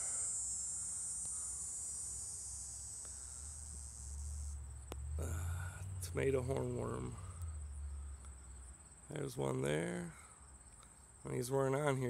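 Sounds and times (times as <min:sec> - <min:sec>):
insects trilling: 0:00.0 - 0:12.0
low rumble on microphone: 0:03.2 - 0:08.8.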